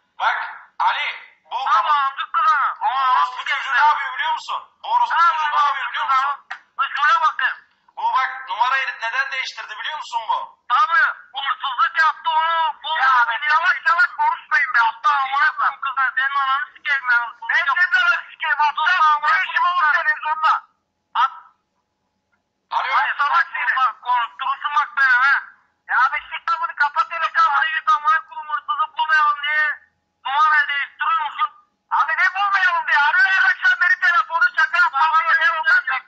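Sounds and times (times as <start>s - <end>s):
speech over a telephone line: 0.2s - 21.6s, 22.7s - 36.0s.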